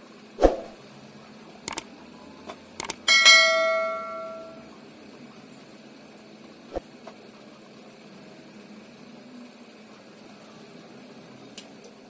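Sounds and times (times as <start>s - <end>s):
quick clicks: 1.7s - 1.9s, 2.8s - 3.0s
notification bell chime: 3.1s - 4.6s.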